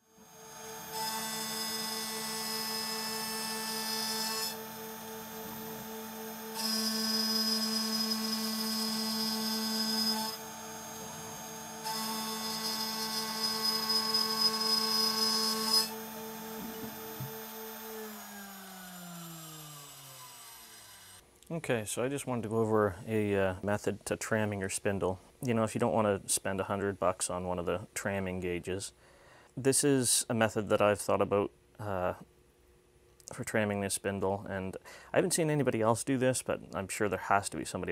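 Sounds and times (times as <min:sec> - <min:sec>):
milling spindle whine: 0:00.0 - 0:21.2
end mill cutting aluminium: 0:00.2 - 0:21.2.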